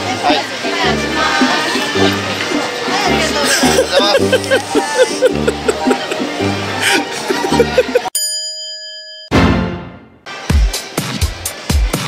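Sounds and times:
bright bell-like ding: 0:08.2 - 0:10.0.

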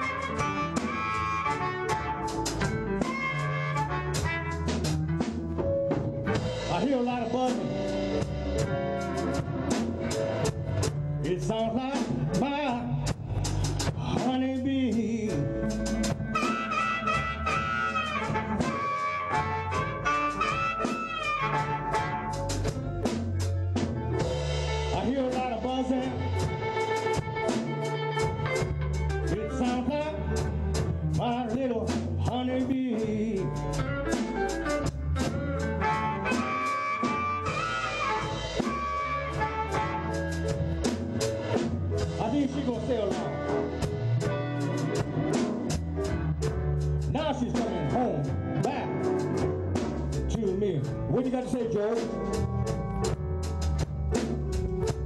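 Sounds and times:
amplified harmonica lead: 0:00.0 - 0:11.5, 0:14.9 - 0:31.2, 0:33.0 - 0:47.0
drum kit beat: 0:00.0 - 0:55.0
electric bass: 0:00.0 - 0:55.0.

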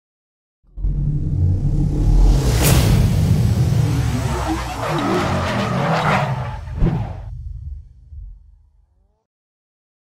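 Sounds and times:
tyres screeching: 0:04.1 - 0:07.3.

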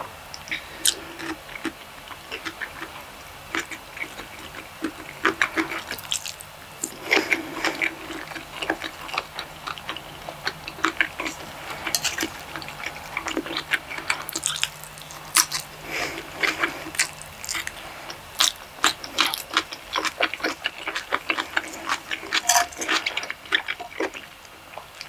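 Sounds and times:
wet chewing: 0:00.4 - 0:25.0.

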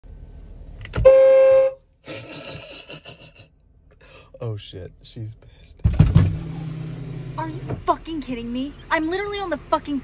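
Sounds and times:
car horn blast: 0:00.9 - 0:01.9.

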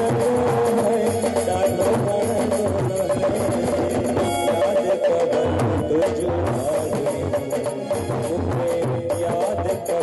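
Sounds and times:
live band playing: 0:00.0 - 0:10.0.

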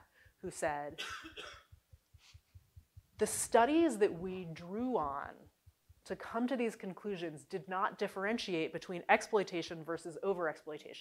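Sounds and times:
person coughing: 0:01.0 - 0:01.7.

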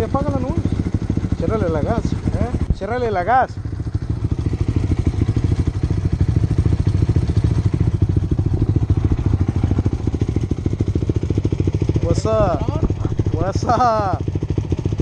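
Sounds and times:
dirt bike engine idling: 0:00.0 - 0:15.0.

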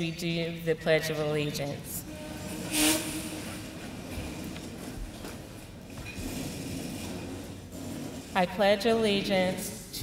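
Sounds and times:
chair scraping on floor: 0:02.1 - 0:08.5.

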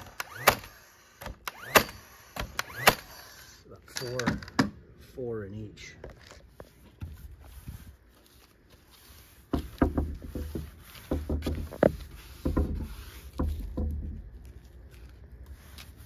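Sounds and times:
paintbrush scrubbing on wood: 0:06.6 - 0:16.0
brush knocking against wood: 0:08.7 - 0:14.6.

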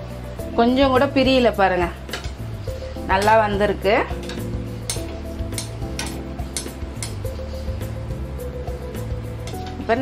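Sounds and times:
soft background music: 0:00.0 - 0:10.0
hot oil sizzling: 0:01.0 - 0:10.0.

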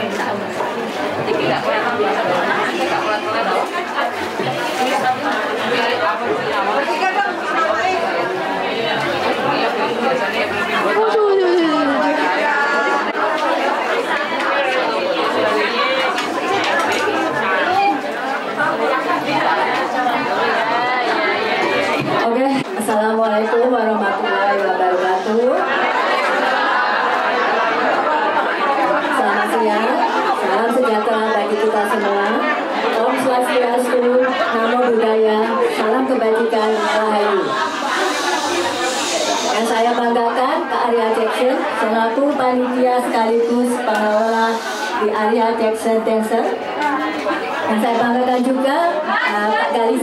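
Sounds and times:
crowd chatter: 0:00.0 - 0:50.0.

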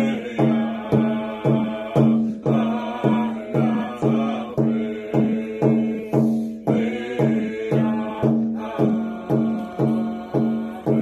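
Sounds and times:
hand drum beats: 0:00.0 - 0:11.0
man chanting: 0:00.0 - 0:11.0.

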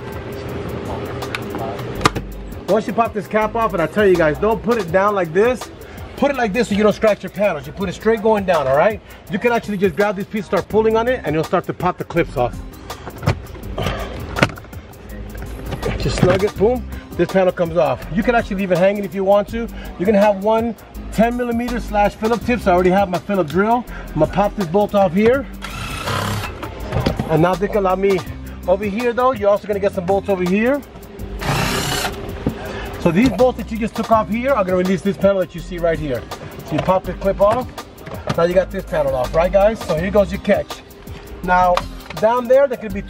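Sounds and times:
cordless drill running: 0:25.6 - 0:26.6, 0:31.4 - 0:32.2.

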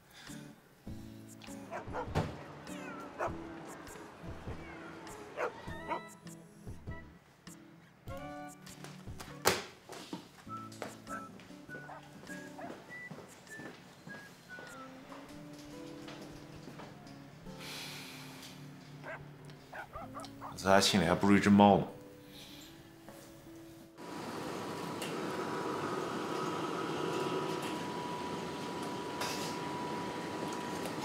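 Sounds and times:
ventilation fans humming: 0:01.7 - 0:05.8, 0:24.0 - 0:31.0.

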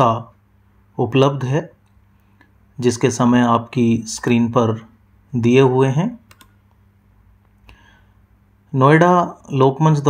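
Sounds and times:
faint clicks: 0:06.3 - 0:06.8.

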